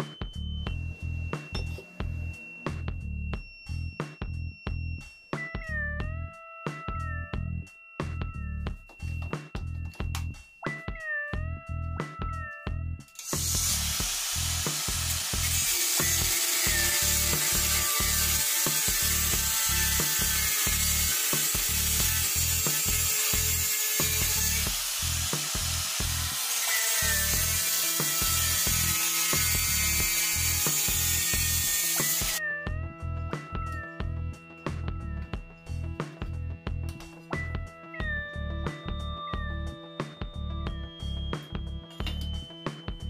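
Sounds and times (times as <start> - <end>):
background music with a beat: 0.0 - 26.4, 27.1 - 43.0
angle grinder cutting steel: 13.2 - 32.4.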